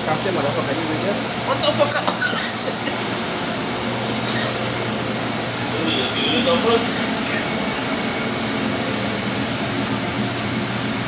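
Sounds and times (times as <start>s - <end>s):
kitchen equipment hiss: 0.0s - 11.0s.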